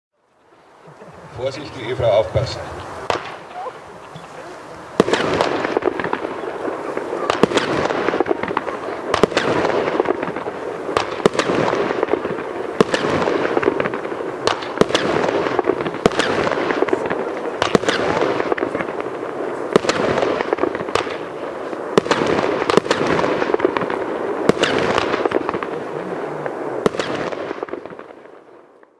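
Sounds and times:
fireworks firing with crackling: 0.5s - 28.9s.

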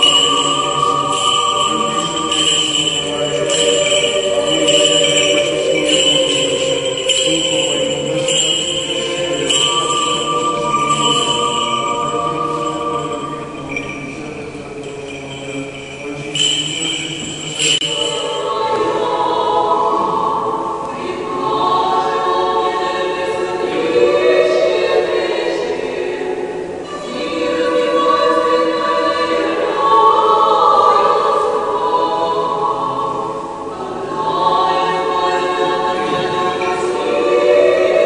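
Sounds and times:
choir singing a cappella chant: 0.0s - 38.0s.

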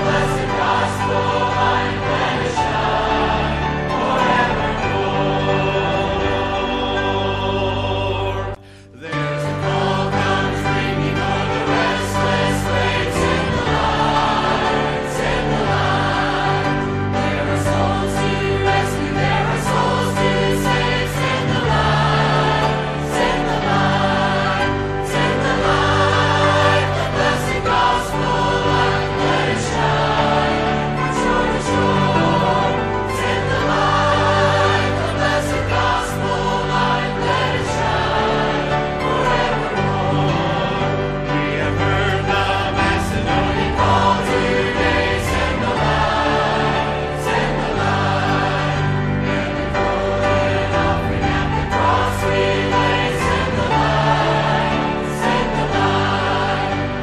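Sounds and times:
choir singing devotional song: 0.0s - 57.0s
sustained accompaniment: 0.0s - 57.0s.

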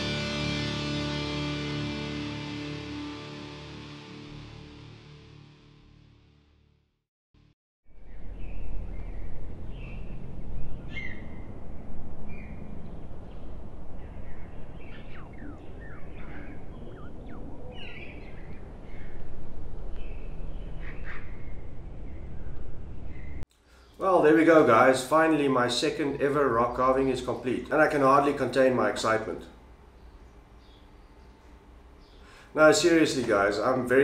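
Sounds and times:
birds chirping: 8.0s - 11.5s, 12.3s - 33.9s
low background rumble: 8.1s - 23.4s.

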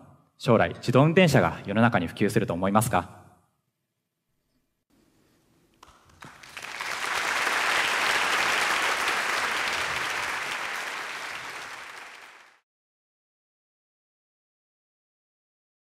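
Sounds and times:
audience applauding: 5.8s - 12.6s.

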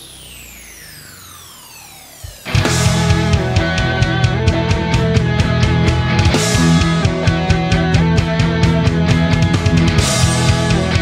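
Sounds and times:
electronic downward sweep: 0.0s - 8.0s.

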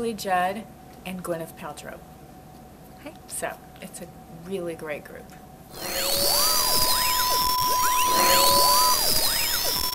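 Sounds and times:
steady test tone beep: 5.7s - 9.9s
synthesized sine tones sweeping: 5.7s - 9.9s.

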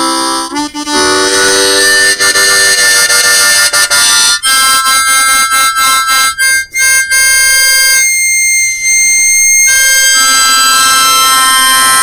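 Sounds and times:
harmonica playing: 0.0s - 12.0s.

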